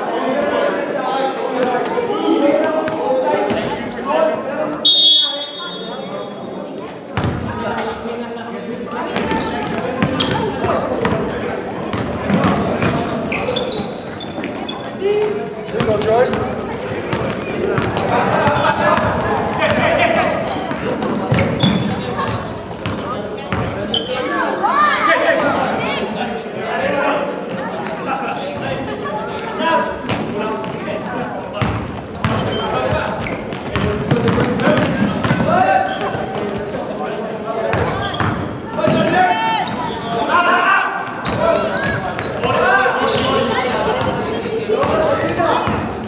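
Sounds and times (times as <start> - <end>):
sneakers squeaking: 7.2 - 7.5, 9.0 - 26.3, 28.2 - 36.8, 37.7 - 46.0
basketball bouncing on wooden floor: 33.6 - 35.5.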